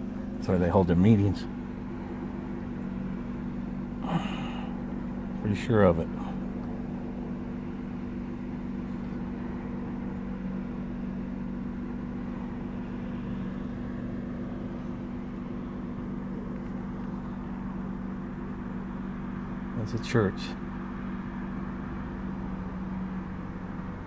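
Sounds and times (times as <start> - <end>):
low mechanical hum: 0.0 - 24.0.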